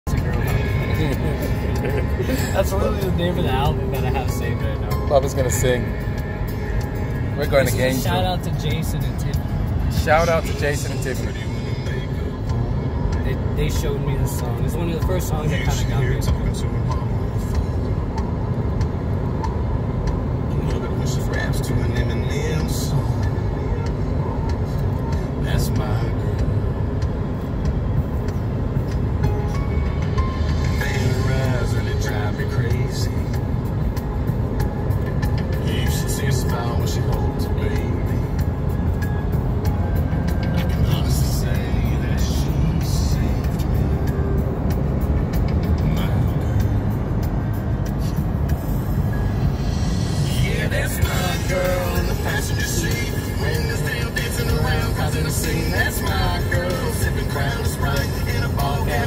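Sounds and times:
car road and engine rumble: 0:00.0 - 0:59.0
song playing: 0:00.0 - 0:59.0.

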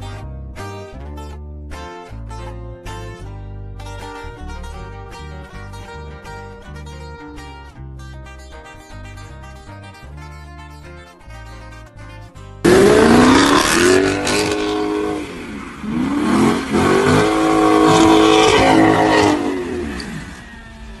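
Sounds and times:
slow guitar music: 0:00.0 - 0:20.9
car engine revving hard: 0:12.6 - 0:21.0.

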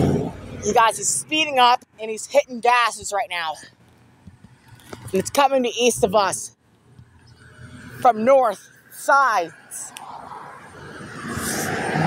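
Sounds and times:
car passing by: 0:09.6 - 0:12.0.

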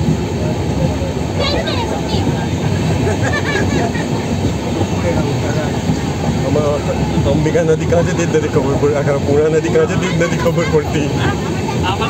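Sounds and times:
moving train running noise: 0:00.0 - 0:12.0.

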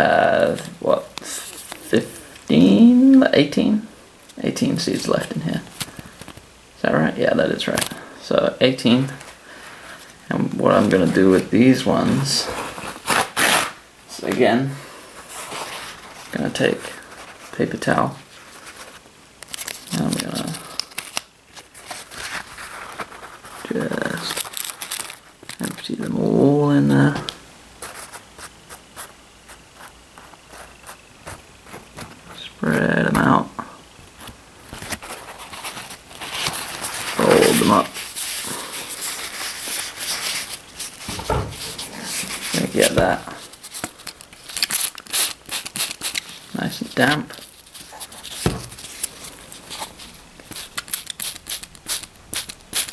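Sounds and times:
paper and plastic crinkling: 0:18.3 - 0:26.2, 0:34.1 - 0:52.9.

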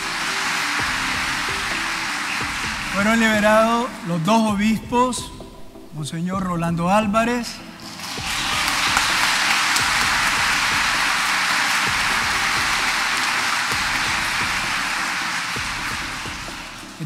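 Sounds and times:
congregation applauding: 0:00.0 - 0:04.9, 0:07.6 - 0:17.0
man speaking: 0:02.9 - 0:07.7.

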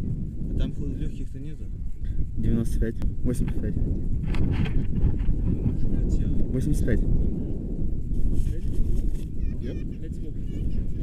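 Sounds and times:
wind buffeting microphone: 0:00.0 - 0:11.0
faint voices: 0:08.4 - 0:11.0.

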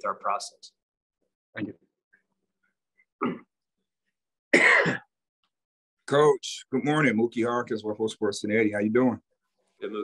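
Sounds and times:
person clearing throat: 0:03.2 - 0:03.6, 0:04.5 - 0:05.2.

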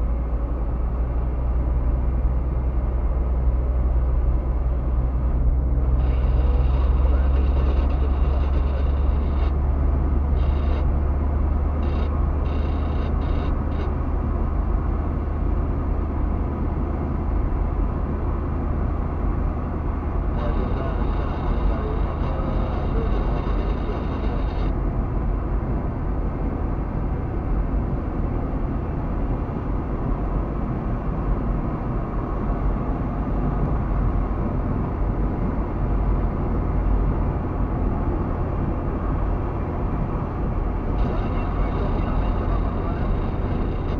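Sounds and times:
car engine and tyre rumble: 0:00.0 - 0:43.9.

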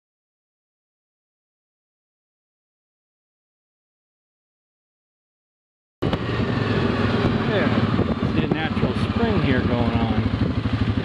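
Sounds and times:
atv engine running: 0:06.0 - 0:11.0.

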